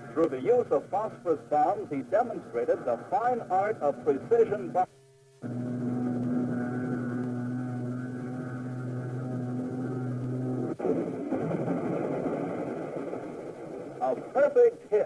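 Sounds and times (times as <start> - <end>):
aircraft engine drone: 0.0 - 15.0
rough rushing noise: 10.7 - 14.6.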